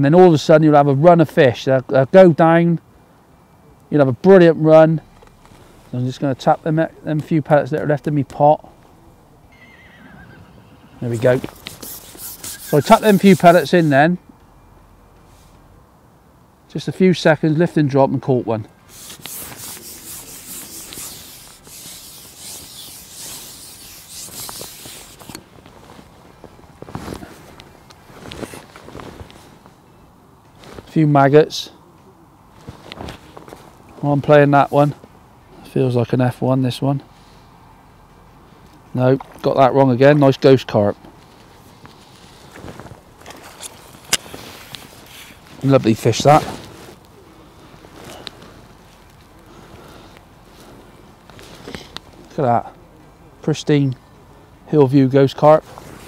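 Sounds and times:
fishing pole sliding and rubbing: 11.0 - 14.1, 18.9 - 26.1, 28.1 - 29.4, 42.2 - 47.0.

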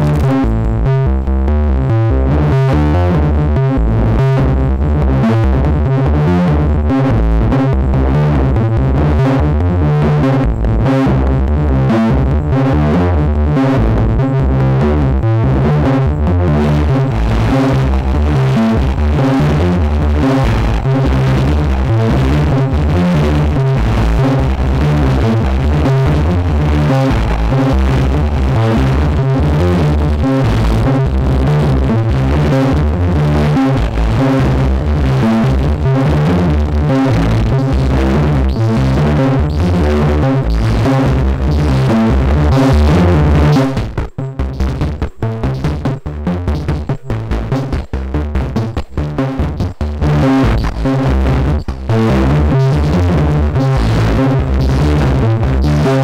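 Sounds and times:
synth arpeggio low notes: 0.0 - 56.0.

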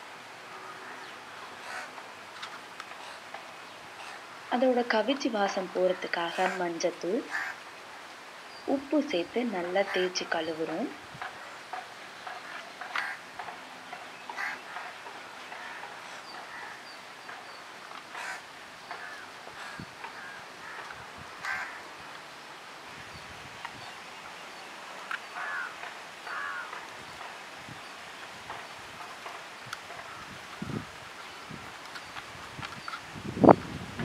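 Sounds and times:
outdoor background hiss: 0.0 - 34.0
birds calling: 0.5 - 33.6.

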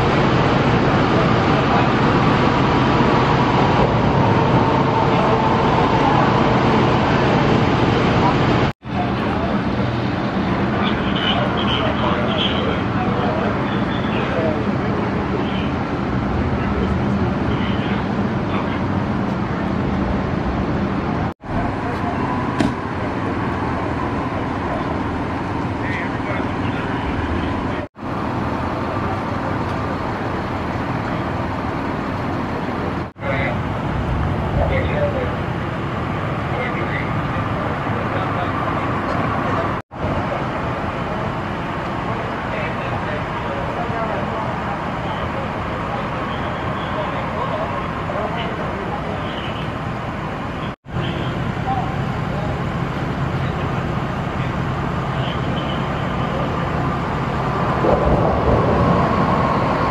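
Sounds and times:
idling engines and traffic: 0.0 - 59.9.

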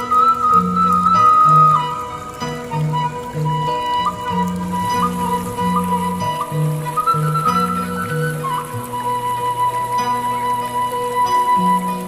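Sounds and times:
bamboo flute long notes: 0.0 - 12.0
low musical accompaniment: 0.0 - 12.0.

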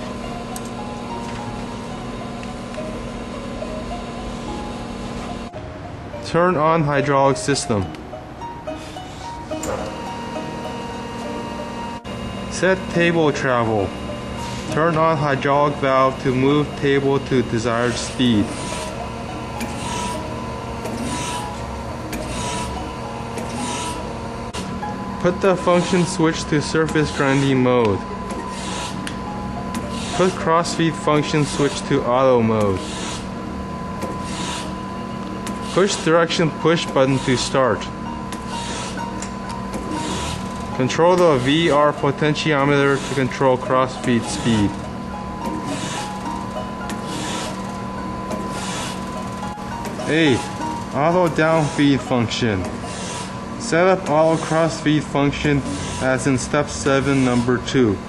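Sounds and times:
grinder hydraulic hum: 0.0 - 58.0.

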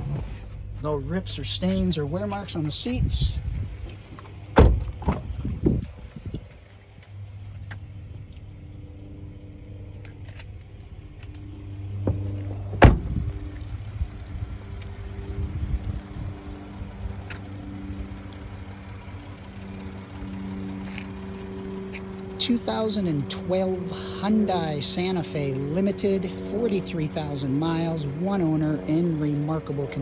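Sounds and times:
steady low hum: 0.0 - 30.0
wind on microphone: 4.8 - 6.6.

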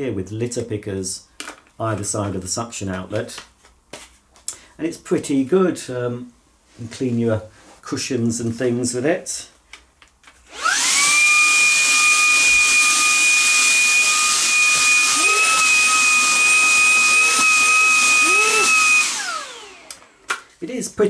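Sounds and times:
handheld vacuum cleaner whining: 10.5 - 20.4.

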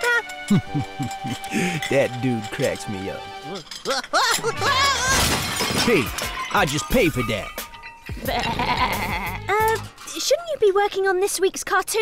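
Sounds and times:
cartoon crockery smashing: 1.0 - 10.2
character's wavering cries: 3.9 - 5.3, 8.2 - 9.8.

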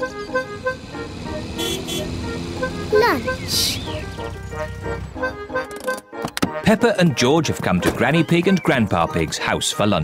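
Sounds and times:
cartoon car engine running: 0.0 - 5.7
light background music: 0.0 - 10.0.

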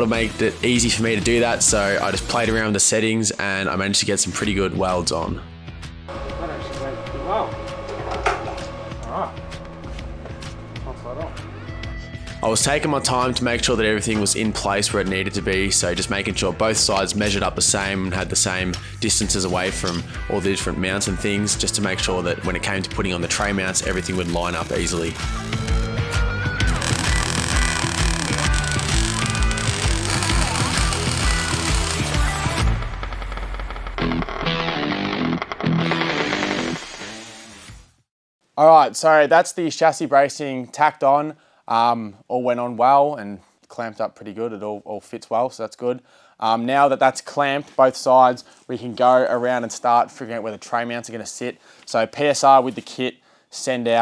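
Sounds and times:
background music with steady beat: 5.5 - 14.8, 25.4 - 33.0
soft background music: 6.1 - 25.2
man speaking: 6.2 - 7.6
welder crackling: 23.3 - 25.9, 26.7 - 37.6.

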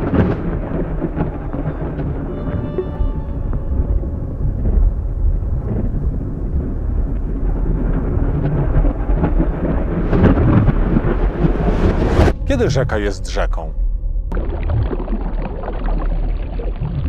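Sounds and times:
deep thunder-like rumble: 0.0 - 16.8.

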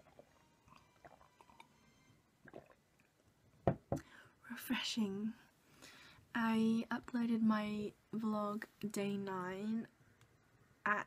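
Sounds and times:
person gulping water: 2.4 - 3.2
sharp knocks: 3.7 - 4.0.

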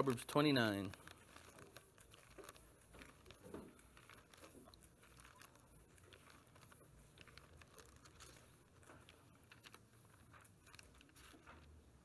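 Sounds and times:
thin pages being leafed through: 0.0 - 12.0.

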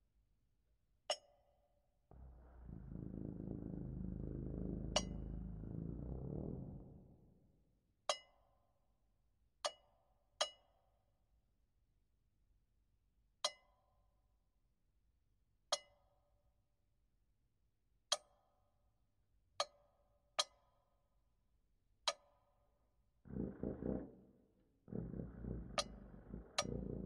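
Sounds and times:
low rumbling: 2.2 - 7.3, 23.3 - 27.0.

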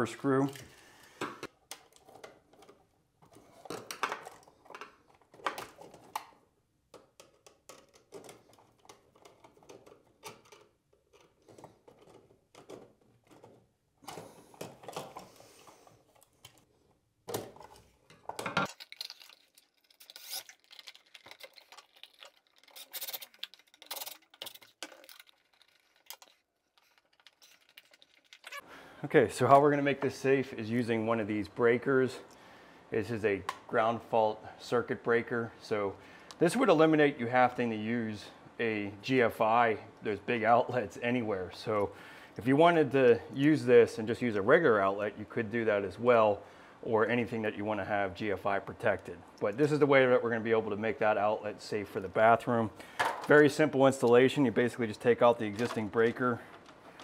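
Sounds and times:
hands handling small parts: 0.2 - 28.7, 52.8 - 57.0.

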